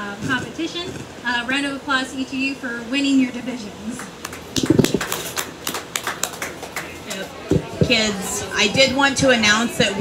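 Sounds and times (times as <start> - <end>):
small audience clapping: 4.0 - 7.6.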